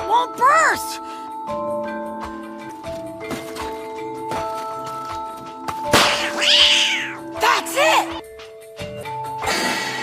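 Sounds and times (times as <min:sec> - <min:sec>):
cat meowing: 0:06.1 - 0:07.2.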